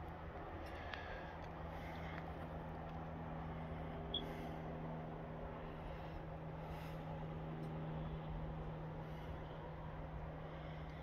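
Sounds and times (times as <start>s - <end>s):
faint rumble: 0.0s - 11.0s
low steady hum: 0.0s - 11.0s.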